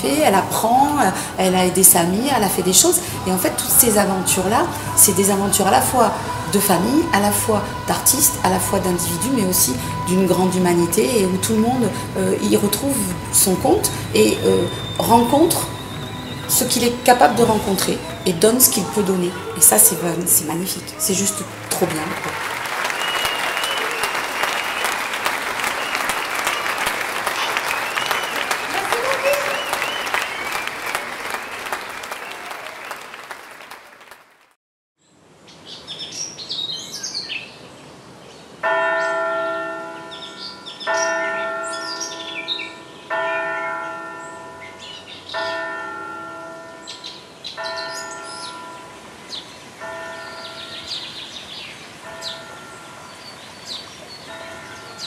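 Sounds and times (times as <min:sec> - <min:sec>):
church bell tolling: 0:00.0 - 0:21.6, 0:38.6 - 0:51.2, 0:52.0 - 0:53.2, 0:54.3 - 0:55.0
birds chirping: 0:00.0 - 0:32.4, 0:46.8 - 0:55.0
whistles: 0:14.6 - 0:18.6, 0:22.2 - 0:33.0
crowd cheering and applauding: 0:14.7 - 0:20.1, 0:20.9 - 0:34.5.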